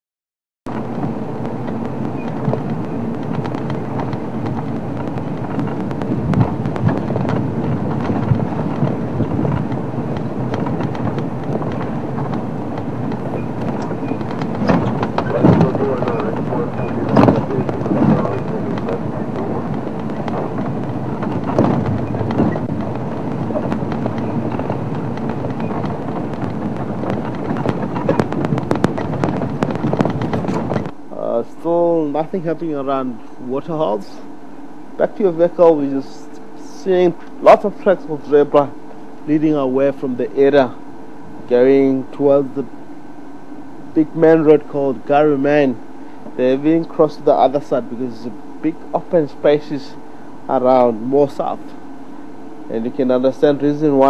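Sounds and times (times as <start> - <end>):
knocks and rattles from bumps: 0.7 - 31.0
vehicle engine and road noise: 0.7 - 54.0.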